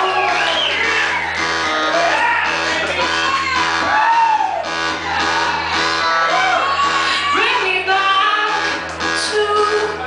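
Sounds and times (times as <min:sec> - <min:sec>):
backing track: 0:00.0 - 0:10.0.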